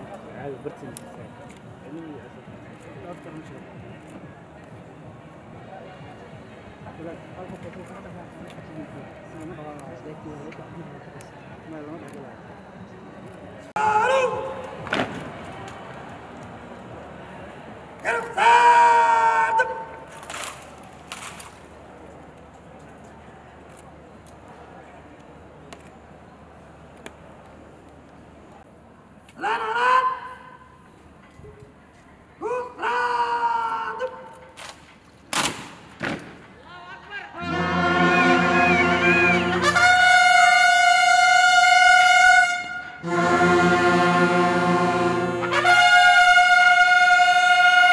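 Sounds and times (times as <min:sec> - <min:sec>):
brass instrument holding high note: 0:37.4 - 0:47.9.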